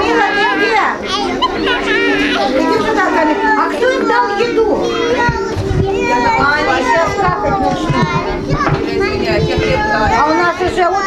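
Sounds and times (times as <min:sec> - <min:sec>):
young children talking and calling: 0:00.0 - 0:11.0.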